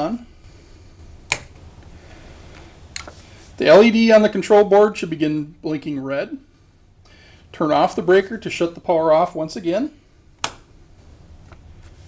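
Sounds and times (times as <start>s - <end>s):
circuit breaker clicks: 1.2s - 1.6s, 10.4s - 10.7s.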